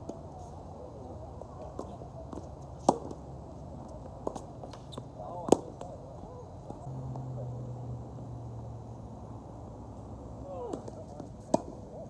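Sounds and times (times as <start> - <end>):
tennis ball struck by racquet: 1.7 - 3.2, 10.7 - 11.8.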